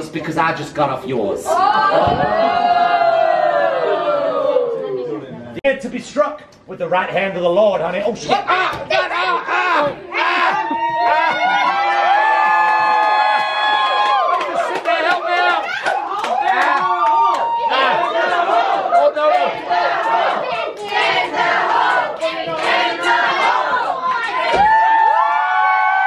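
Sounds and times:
group shouting and cheering: 1.4 - 5.5, 8.2 - 26.0.

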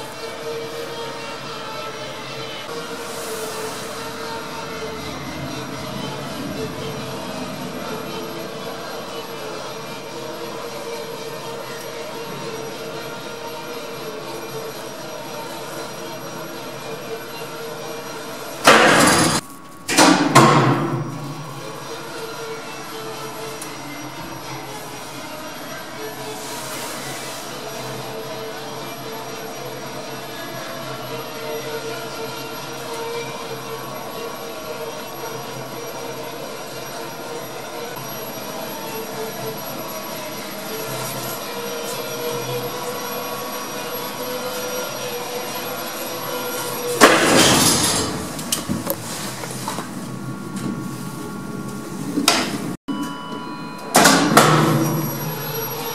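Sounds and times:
lift car rushing rumble: 0.0 - 30.6, 31.2 - 55.9
faint hum: 1.6 - 18.5.

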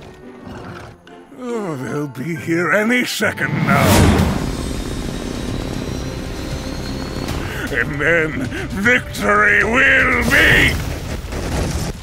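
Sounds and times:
motorcycle engine droning: 3.8 - 8.8.

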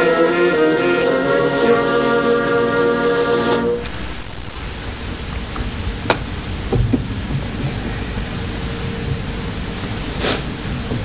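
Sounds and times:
brass band chord: 0.0 - 4.2
steady hiss: 0.0 - 11.0.

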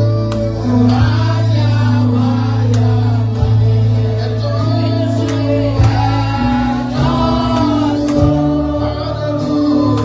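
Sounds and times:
choir and congregation singing: 0.0 - 10.0
instrumental backing: 0.0 - 10.0.

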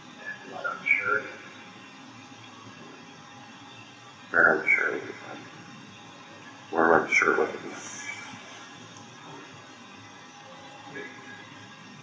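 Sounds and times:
indistinct speech: 4.3 - 5.4, 6.7 - 8.0.

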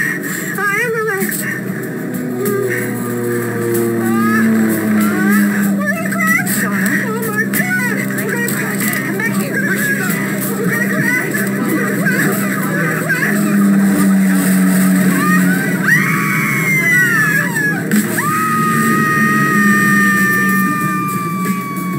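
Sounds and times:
dramatic music: 0.0 - 21.9
passengers crying out: 0.0 - 21.9
steady drone: 0.0 - 21.9
long falling cry: 1.8 - 6.4, 12.6 - 21.9.

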